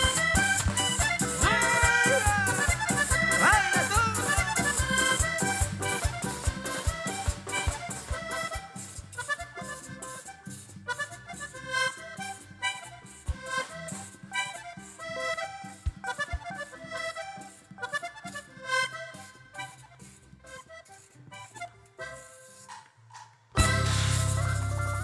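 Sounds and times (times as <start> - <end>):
electric bass: 0.0 - 14.4, 23.6 - 25.0
band playing live: 0.0 - 16.9, 23.6 - 25.0
accordion melody: 0.0 - 25.0
guitar: 0.0 - 25.0.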